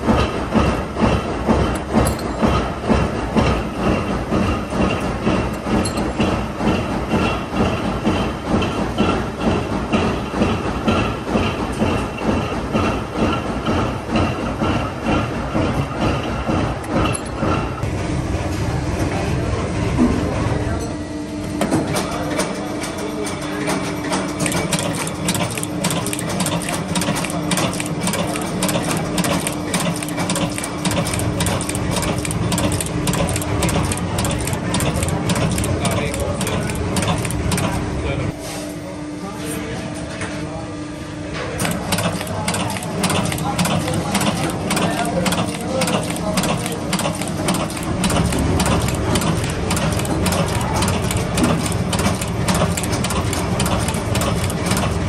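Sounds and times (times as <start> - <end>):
machinery humming: 0.0 - 55.0
fast continuous clicking and clatter: 21.6 - 37.9, 41.6 - 55.0.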